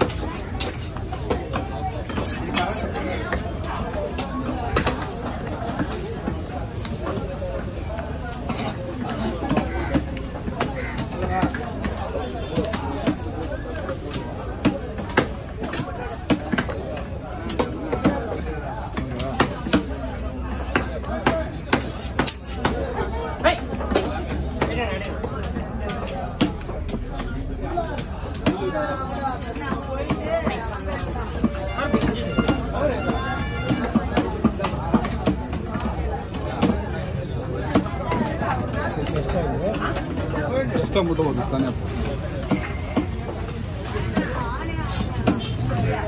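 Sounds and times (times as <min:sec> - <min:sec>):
voices talking: 0:00.0 - 0:46.0.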